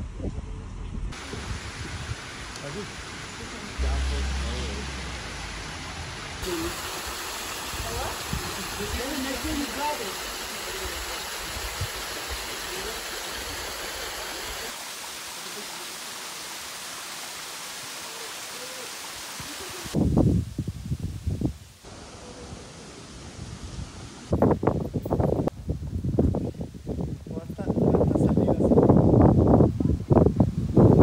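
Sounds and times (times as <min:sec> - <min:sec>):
waterfall rushing over rock: 0:06.4 - 0:20.0.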